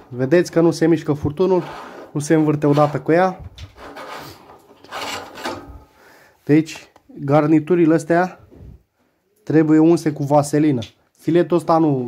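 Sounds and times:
metal grating on metal: 1.4 - 3.1, 3.8 - 5.8.

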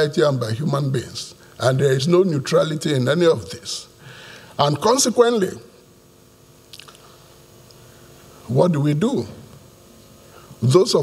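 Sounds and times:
faint room hum: 0.0 - 11.0
soft mouth click: 6.7 - 7.8.

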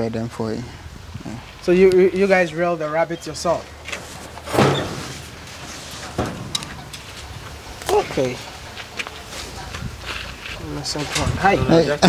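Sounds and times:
hutch door scraping: 3.4 - 8.3.

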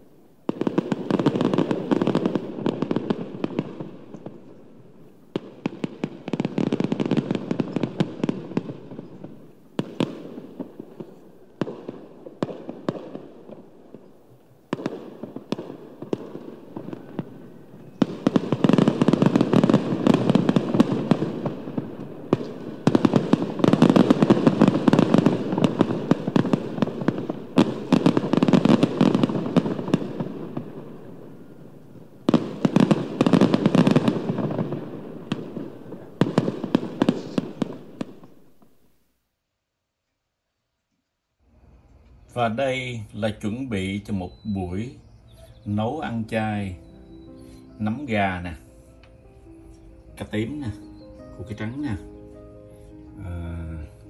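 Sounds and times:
firecrackers crackling: 0.0 - 39.1, 41.4 - 54.0.

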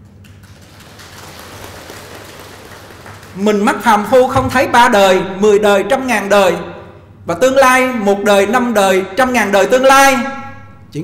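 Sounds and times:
audience applauding: 0.2 - 3.5.

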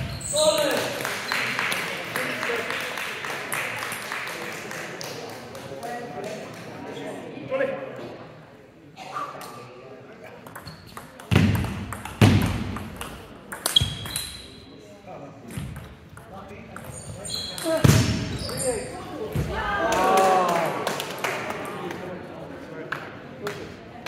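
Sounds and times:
table tennis ball clicks: 10.4 - 14.4.

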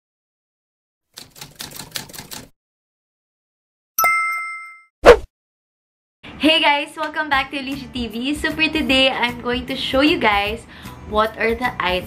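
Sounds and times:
typewriter keystrokes clacking: 1.2 - 2.5.

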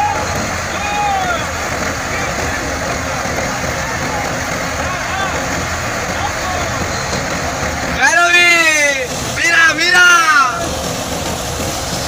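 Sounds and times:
grain thresher running: 0.0 - 12.0
tractor diesel engine: 0.0 - 12.0.

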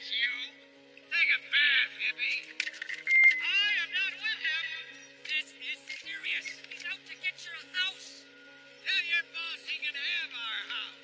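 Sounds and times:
film soundtrack music: 0.0 - 11.0
high-pitched squeaky calls: 2.3 - 3.8.

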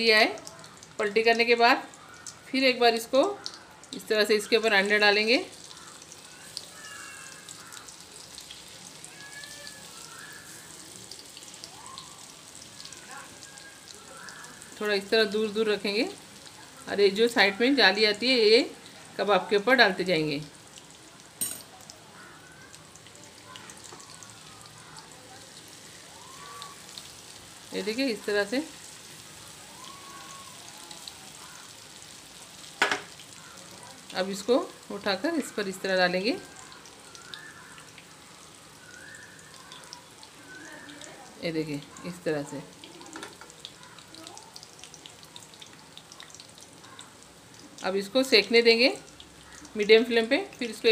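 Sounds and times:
hot oil sizzling and crackling: 0.0 - 50.9.

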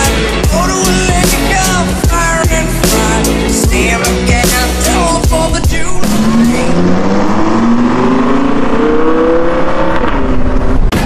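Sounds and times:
engine-like sound rising in pitch: 5.0 - 10.9.

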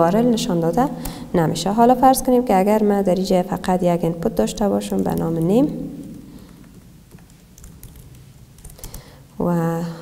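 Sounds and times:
keyboard typing: 4.7 - 9.1.

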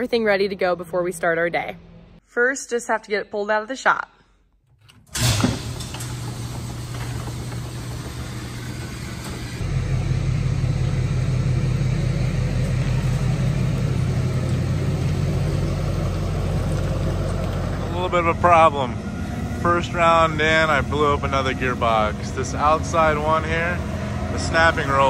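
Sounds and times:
truck engine humming: 5.2 - 25.0.

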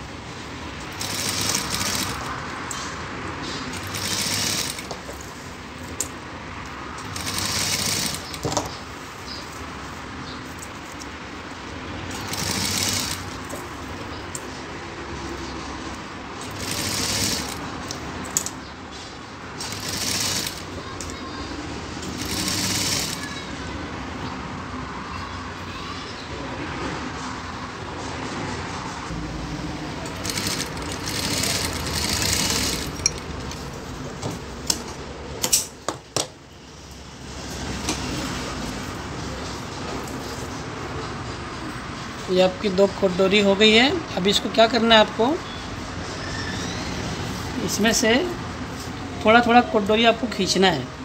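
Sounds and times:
sewing machine stitching: 0.9 - 2.3, 3.7 - 5.0, 7.0 - 8.5, 12.1 - 13.3, 16.4 - 17.6, 19.6 - 20.7, 22.0 - 23.3, 30.0 - 33.2.

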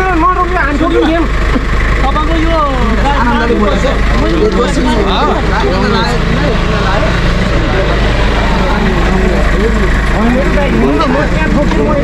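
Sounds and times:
bystanders talking: 0.0 - 12.0
vehicle engine idling: 0.0 - 12.0.

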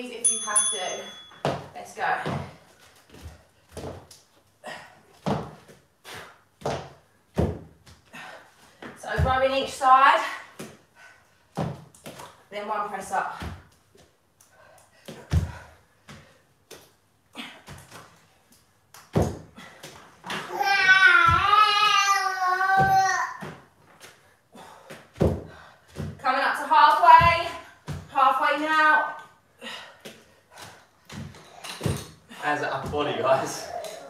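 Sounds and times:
dumbbells thudding on exercise mats: 0.8 - 4.1, 5.1 - 5.8, 6.6 - 10.9, 11.5 - 12.4, 13.1 - 13.7, 15.0 - 18.2, 19.0 - 21.9, 22.7 - 29.2, 29.8 - 33.6.

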